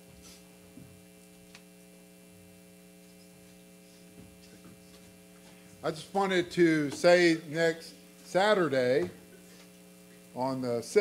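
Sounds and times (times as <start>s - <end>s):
low electrical mains hum: 0.0s - 11.0s.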